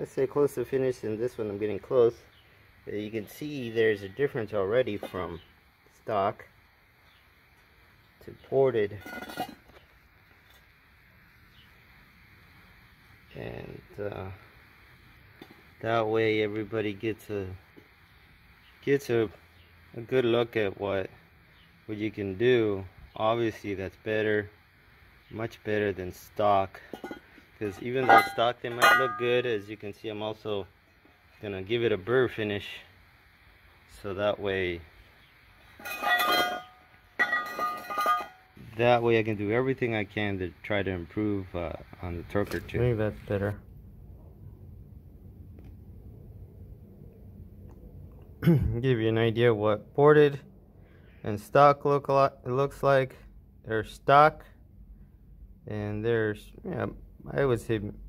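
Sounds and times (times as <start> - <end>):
faint steady hiss: 0.0 - 58.0
metal scraping on concrete: 8.8 - 9.8, 26.7 - 29.6, 35.7 - 38.8.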